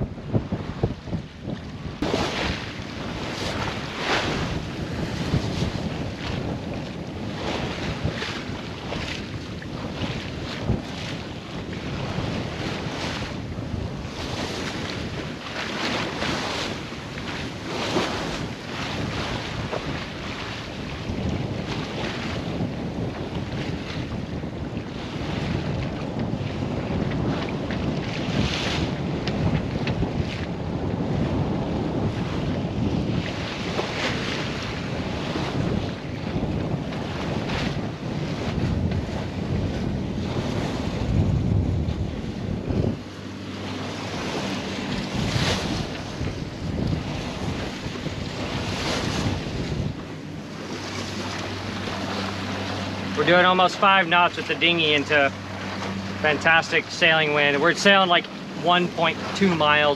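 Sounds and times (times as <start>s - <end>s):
water rushing along hull: 0.0s - 59.9s
wind buffeting microphone: 0.0s - 59.9s
low rumble: 39.6s - 59.4s
steady low hum: 40.9s - 59.6s
water splashes: 42.2s - 59.9s.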